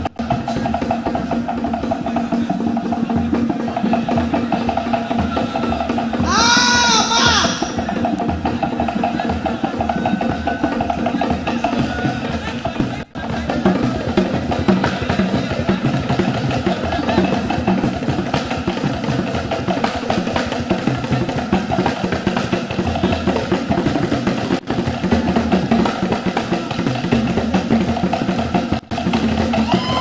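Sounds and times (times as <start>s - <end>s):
hand drums playing dance rhythm: 0.0s - 30.0s.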